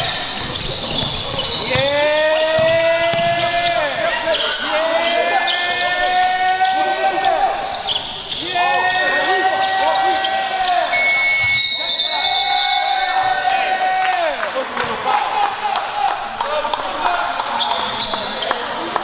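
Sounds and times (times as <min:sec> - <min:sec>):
basketball dribbling: 0:00.0 - 0:03.8
sneakers squeaking on hardwood: 0:00.0 - 0:12.8, 0:17.6 - 0:18.6.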